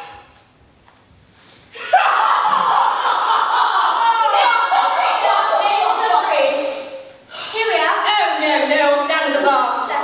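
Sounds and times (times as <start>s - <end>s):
young women laughing and squealing: 1.8s - 6.8s.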